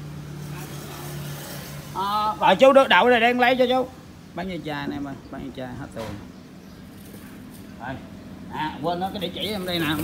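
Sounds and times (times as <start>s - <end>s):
vehicle engine hum: 0.0s - 10.0s.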